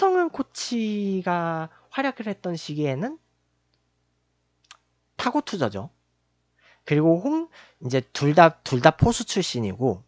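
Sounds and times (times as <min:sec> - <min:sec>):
man speaking: 0:00.0 - 0:03.2, 0:05.2 - 0:06.0, 0:06.8 - 0:10.0.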